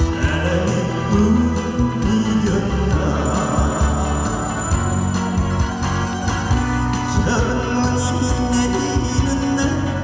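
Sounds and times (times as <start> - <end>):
instrumental backing track with beat: 0.0 - 10.0.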